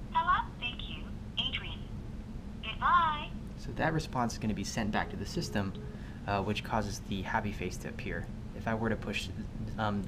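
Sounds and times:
automated female voice on phone: 0.0 - 1.9, 2.6 - 3.4.

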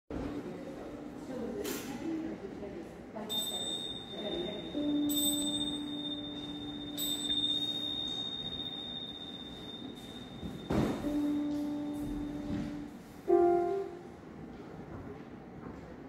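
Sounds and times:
chime ringing: 3.3 - 12.6
steady lower tone: 3.3 - 14.4.

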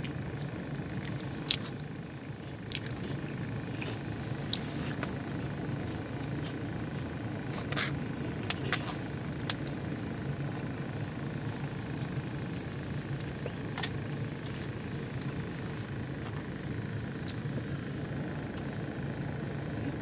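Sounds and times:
car engine idling: 0.0 - 20.0.

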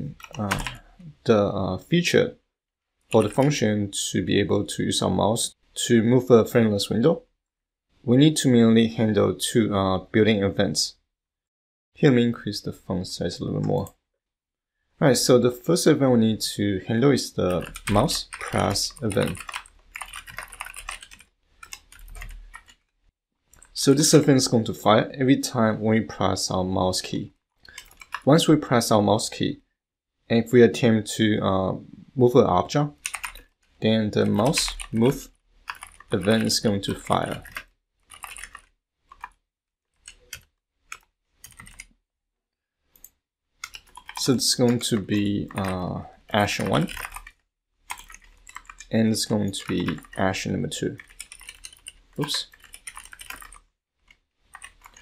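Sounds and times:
typing on computer keyboard: 0.1 - 0.8, 17.5 - 22.8, 27.7 - 28.3, 33.0 - 33.5, 34.2 - 39.4, 40.0 - 41.9, 43.0 - 50.3, 50.9 - 53.7, 54.5 - 55.0.

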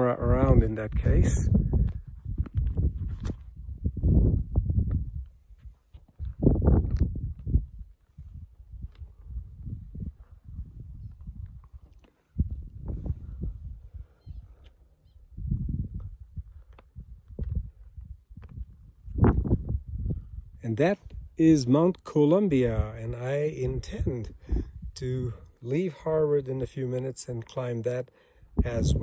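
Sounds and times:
wind buffeting microphone: 0.0 - 21.4, 22.5 - 25.6, 28.4 - 29.0.

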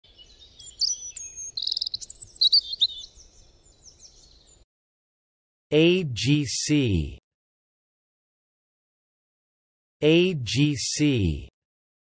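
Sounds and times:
songbird chirping and trilling: 0.0 - 4.7.

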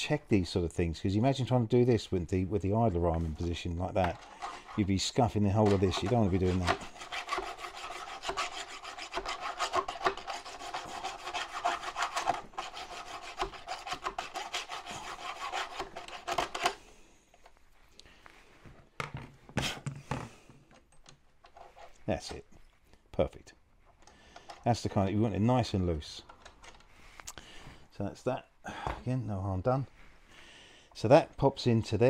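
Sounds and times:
file rasping in metal hole: 4.2 - 16.8.

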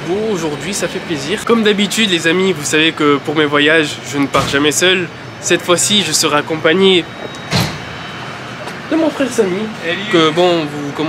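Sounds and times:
road traffic noise: 0.0 - 11.0.

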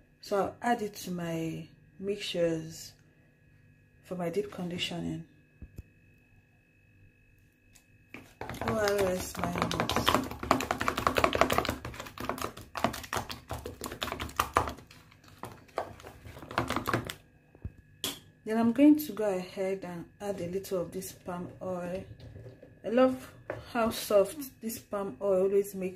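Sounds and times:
spoon stirring paste in tub: 8.1 - 17.2, 20.2 - 24.0.

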